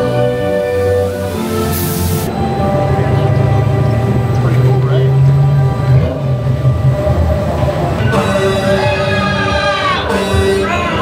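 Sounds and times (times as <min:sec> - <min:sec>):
music playing: 0:00.0 - 0:11.0
ride car rumbling along track: 0:00.0 - 0:11.0.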